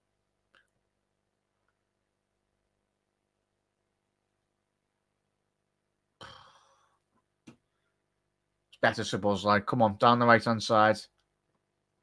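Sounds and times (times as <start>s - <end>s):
man sighing: 6.2s - 7.0s.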